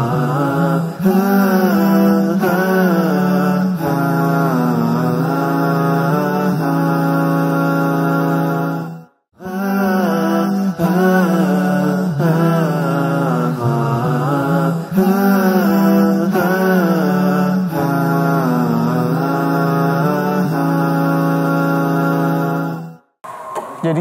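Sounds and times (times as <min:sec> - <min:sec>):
chanted melodic voice: 0:00.0 - 0:23.0.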